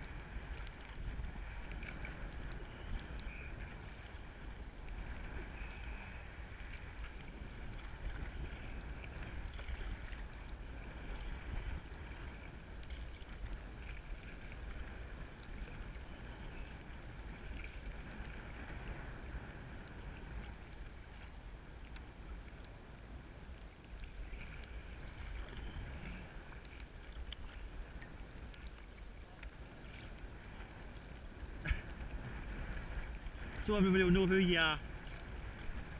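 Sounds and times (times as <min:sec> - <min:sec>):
water sloshing against hull: 0:00.0 - 0:35.9
wind buffeting microphone: 0:00.0 - 0:35.9.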